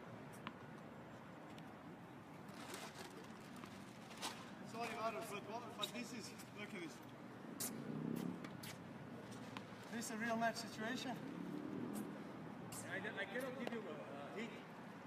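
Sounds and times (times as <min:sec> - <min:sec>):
tennis balls struck by racquets: 0:11.9 - 0:13.9.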